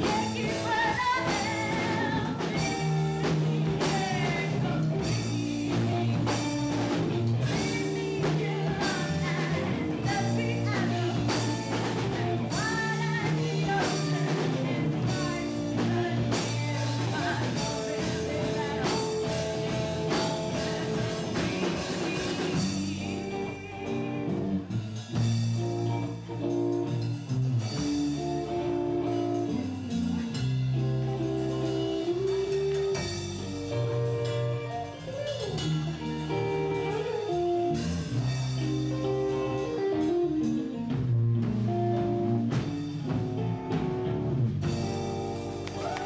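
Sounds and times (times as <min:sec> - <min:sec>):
drum kit: 0:00.0 - 0:46.0
electric guitars: 0:00.0 - 0:46.0.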